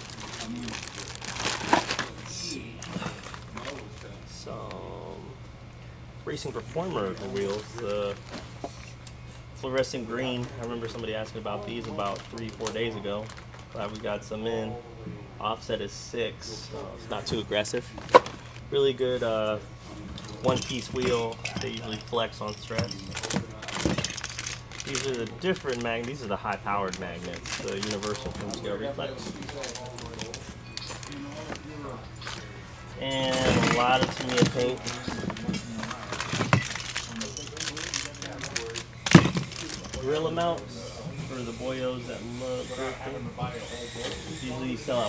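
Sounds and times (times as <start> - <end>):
parts rummaged in cardboard box: 0.0 - 2.2, 20.4 - 26.2, 27.2 - 31.6, 33.1 - 40.6
packaging crinkling and rustling: 0.0 - 4.1, 6.7 - 8.5, 11.6 - 14.2, 20.4 - 32.5, 33.2 - 40.7.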